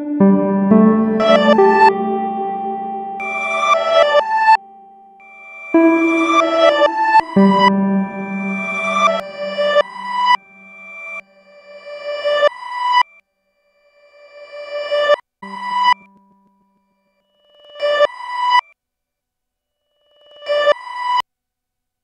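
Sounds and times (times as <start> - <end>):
synthesized electronic chords: 0.0 - 11.2.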